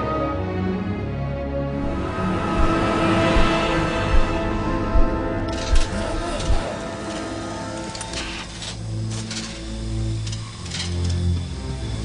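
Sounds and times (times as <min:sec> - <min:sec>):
dark orchestral music: 0:00.0 - 0:12.0.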